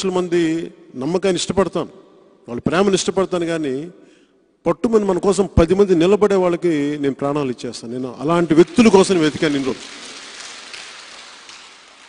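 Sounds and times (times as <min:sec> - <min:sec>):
audience applause: 0:08.5 - 0:12.0.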